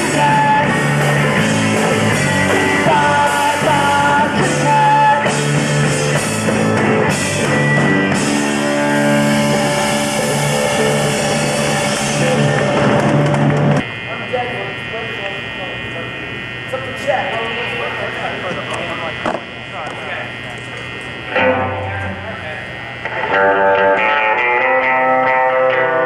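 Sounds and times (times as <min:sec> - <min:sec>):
rock band playing: 0:00.0 - 0:13.8, 0:21.3 - 0:22.3, 0:23.0 - 0:26.0.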